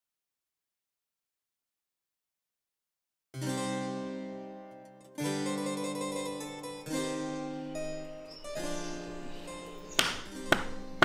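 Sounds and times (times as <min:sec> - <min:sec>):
harpsichord music: 0:03.4 - 0:11.0
staff knocking on ground: 0:10.0 - 0:11.0.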